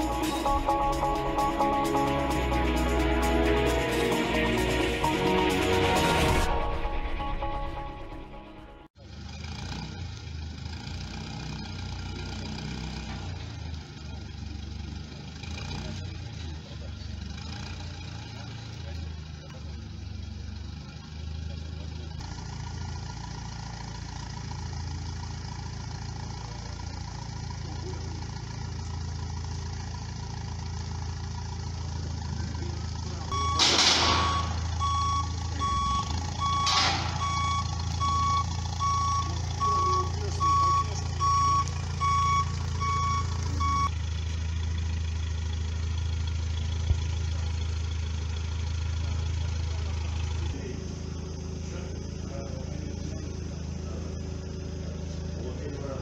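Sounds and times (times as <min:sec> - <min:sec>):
forklift engine running: 0:00.0 - 0:56.0
reversing alarm beeps: 0:33.3 - 0:43.9.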